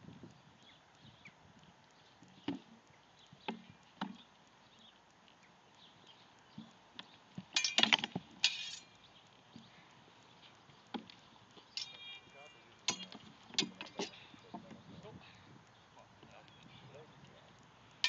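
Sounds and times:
ringing clink: 11.8s - 12.3s.

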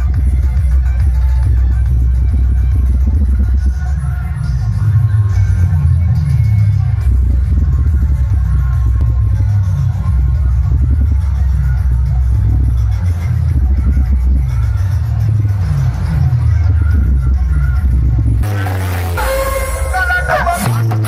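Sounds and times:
electronic dance music with heavy bass: 0.0s - 21.0s.

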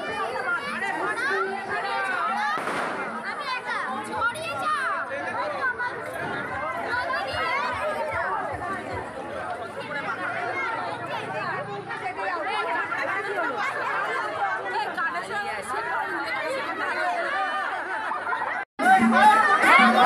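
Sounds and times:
women and girls talking: 0.0s - 20.0s.

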